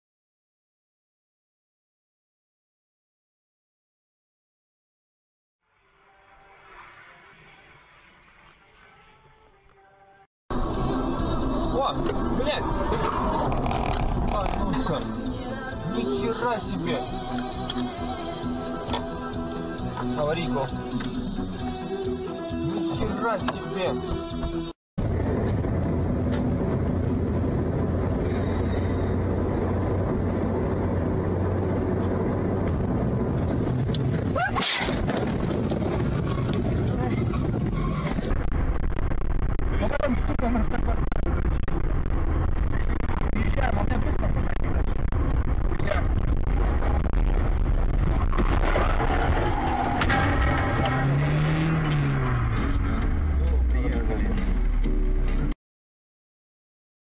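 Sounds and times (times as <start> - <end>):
car road and engine noise: 5.7 - 55.6
vehicle crash impact: 48.0 - 53.2.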